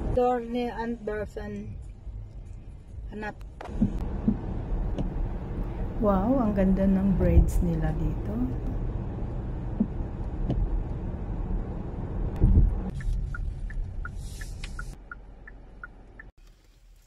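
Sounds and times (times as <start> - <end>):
car engine and tyre rumble: 0.0 - 17.0
alternating ticking: 12.5 - 16.4
short hiss: 14.1 - 15.0.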